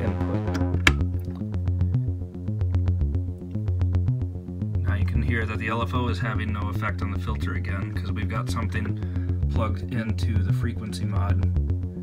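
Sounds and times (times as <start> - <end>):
synthesizer bass sequence: 0.0 - 12.0.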